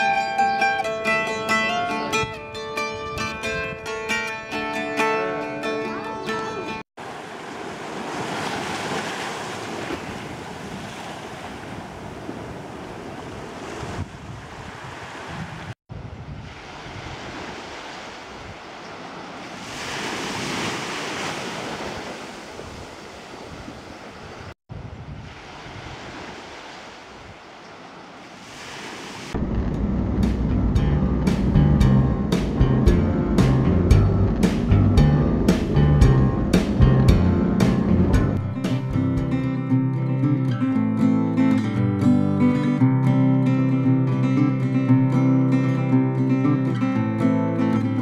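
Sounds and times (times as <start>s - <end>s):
ocean surf breaking: 7.0s - 30.4s
wind on microphone: 8.1s - 27.5s
music with a beat: 30.2s - 39.4s.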